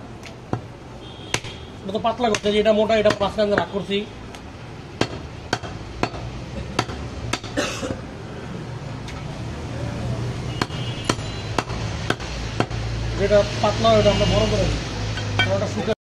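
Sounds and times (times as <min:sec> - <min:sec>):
knife chopping meat on wooden block: 0:02.3 - 0:03.7.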